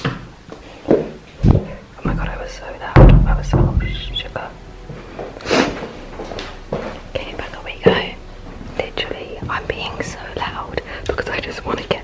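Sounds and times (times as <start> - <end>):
woman whispering: 1.8 - 4.6, 7.1 - 8.2, 8.8 - 12.0
footsteps on carpeted stairs: 4.8 - 9.8.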